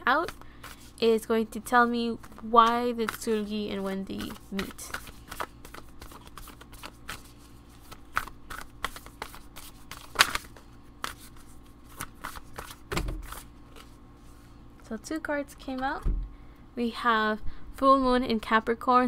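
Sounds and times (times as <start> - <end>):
cards being shuffled: 2.2 - 14.0
low thump: 16.0 - 16.4.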